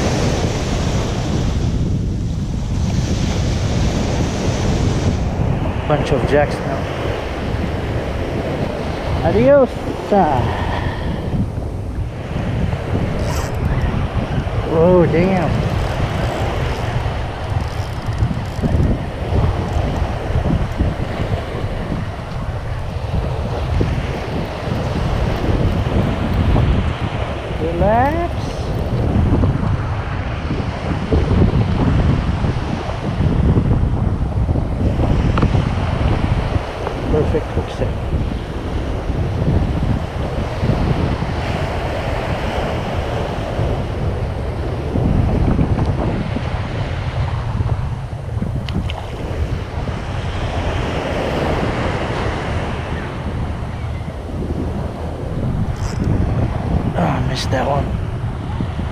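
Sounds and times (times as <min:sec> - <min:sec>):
surf breaking on beach: 0:00.0 - 0:58.9
wind rumble on microphone: 0:00.0 - 0:58.9.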